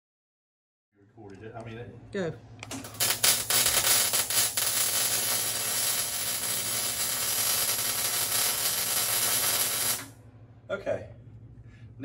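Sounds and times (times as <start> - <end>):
arc welder crackling and hissing: 2.7 - 10.2.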